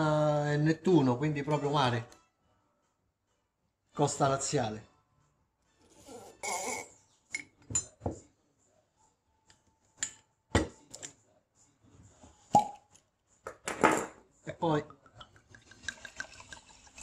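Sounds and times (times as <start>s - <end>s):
cork popping out: 12.5s - 12.9s.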